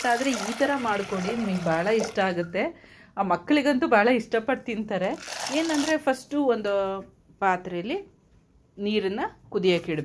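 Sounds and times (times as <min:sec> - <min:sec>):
person speaking: 0:04.6 - 0:06.3.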